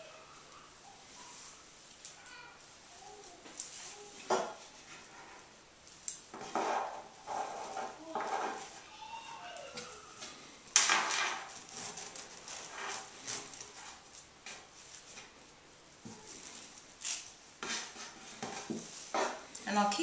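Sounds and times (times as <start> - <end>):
fabric strips rustling: 9.6 - 19.5.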